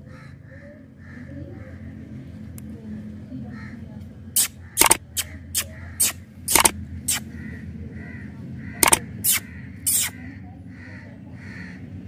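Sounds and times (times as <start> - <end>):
puppy licking lollipop: 8.8 - 10.1.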